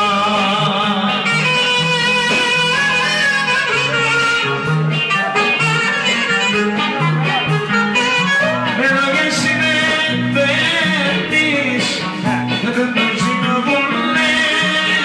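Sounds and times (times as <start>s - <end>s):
bass and rhythm accompaniment: 0.0s - 15.0s
clarinet melody: 0.0s - 15.0s.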